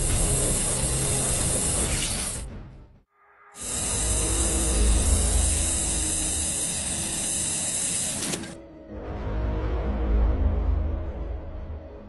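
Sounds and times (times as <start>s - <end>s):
gas jet flame hissing: 0.0s - 2.5s, 3.6s - 8.6s.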